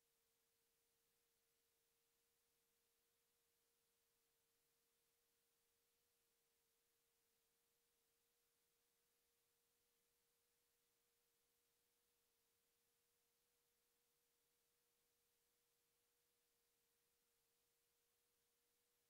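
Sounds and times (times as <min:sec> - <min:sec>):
faint steady tone: 0:00.0 - 0:19.0.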